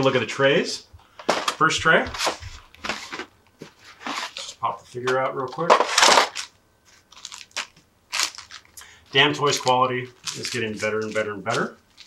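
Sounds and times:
plastic packaging rustling: 1.2s - 12.0s.

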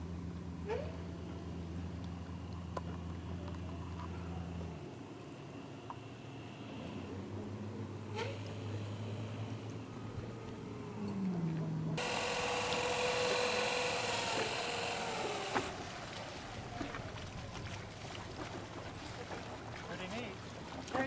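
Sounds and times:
motor whine with hiss: 12.0s - 15.8s
electric motor and propeller hum: 12.0s - 16.1s.

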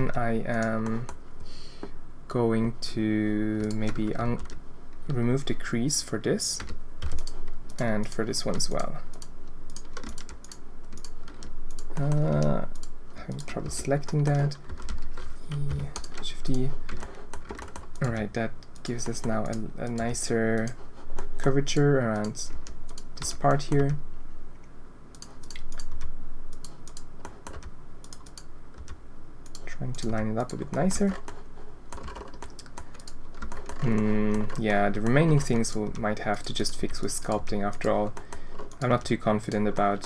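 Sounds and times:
computer keyboard and mouse clicks: 3.5s - 4.6s, 6.6s - 24.0s, 25.1s - 40.0s.

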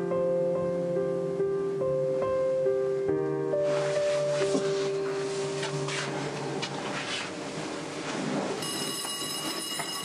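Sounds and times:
high ringing chord: 8.3s - 10.0s.

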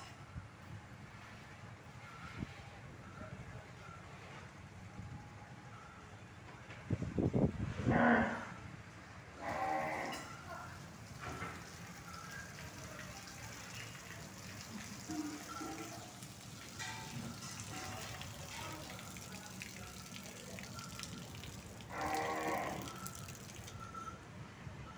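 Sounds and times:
cows mooing: 9.4s - 10.4s, 21.8s - 23.7s.

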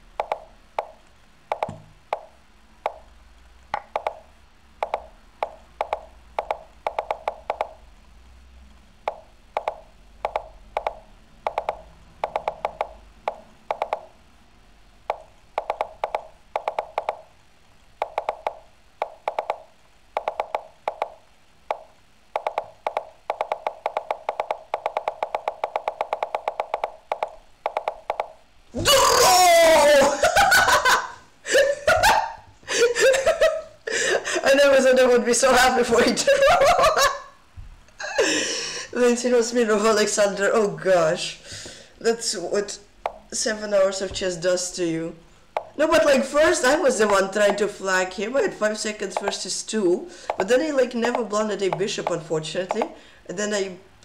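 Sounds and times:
loud laughter: 29.0s - 34.4s, 36.0s - 37.4s.

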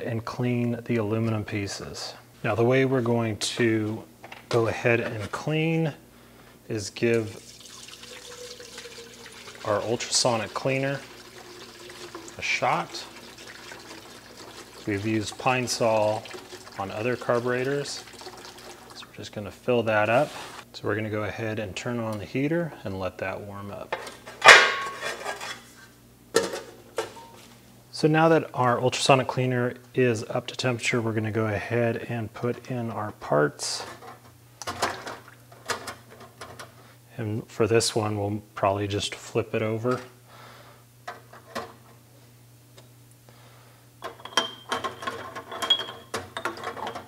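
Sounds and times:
faint steady hum: 0.0s - 47.0s
liquid pouring into metal tank: 7.2s - 19.2s.

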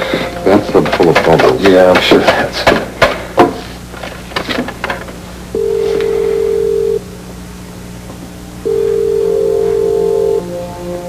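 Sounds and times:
soft background music: 0.0s - 1.9s, 8.7s - 11.0s
telephone ringback tone: 5.6s - 7.0s, 8.6s - 10.5s.

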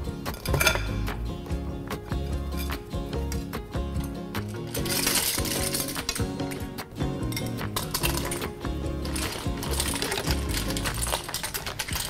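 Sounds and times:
background music: 0.0s - 12.0s
clam shells clattering into pot: 4.4s - 6.6s, 7.3s - 12.0s.

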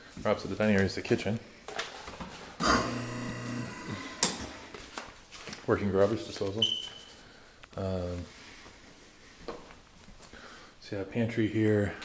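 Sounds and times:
garbage disposal motor humming: 2.6s - 4.8s.

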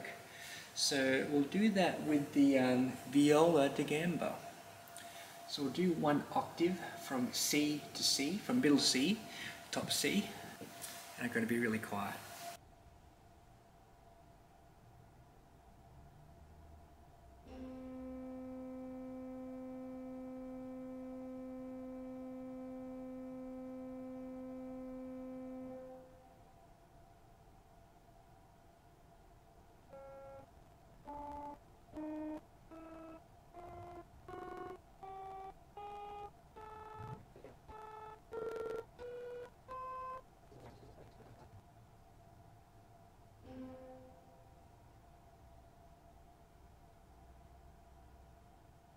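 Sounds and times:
faint steady hum: 0.0s - 48.9s
pipe organ notes: 17.5s - 26.4s, 29.9s - 40.2s, 43.4s - 44.6s.

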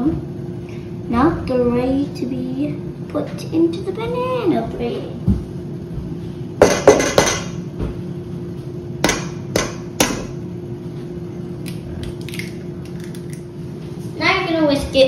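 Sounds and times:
eggs cracked on metal bowl: 11.6s - 13.5s.

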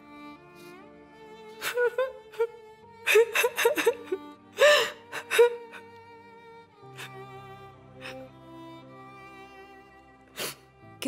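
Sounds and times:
background music: 0.0s - 11.0s
woman sobbing: 1.6s - 5.9s.

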